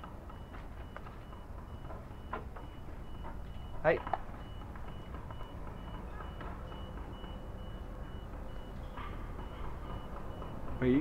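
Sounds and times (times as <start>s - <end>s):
high electronic beep: 0.3s - 8.8s, 9.4s - 11.0s.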